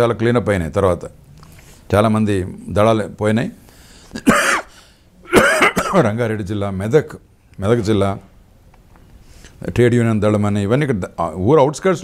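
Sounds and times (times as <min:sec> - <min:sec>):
man coughing: 0:04.2 - 0:06.1.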